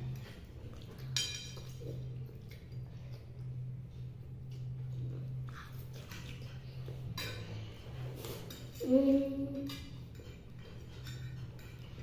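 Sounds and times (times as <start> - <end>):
steady low hum: 0.0 - 12.0
sharp cutlery clatter: 0.9 - 1.9, 9.5 - 12.0.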